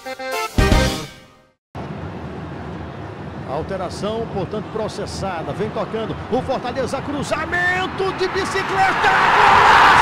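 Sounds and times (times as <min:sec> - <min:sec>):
stadium crowd noise: 0:03.4 - 0:10.0.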